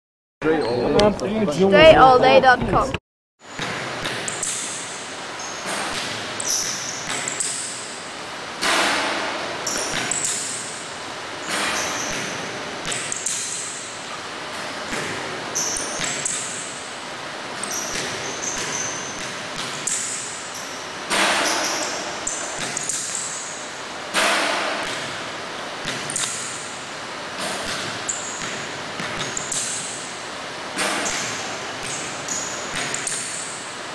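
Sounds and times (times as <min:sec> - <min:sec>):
loud bangs with ringing tail: 0:17.9 - 0:25.3
basketball bouncing on hardwood: 0:27.6 - 0:29.8.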